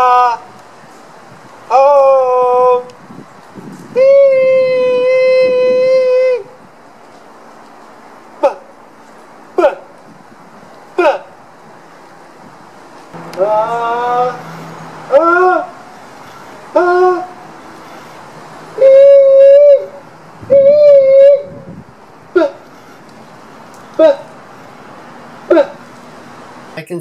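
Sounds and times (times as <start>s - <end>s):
man singing wordless tones: 13.2s - 14.5s.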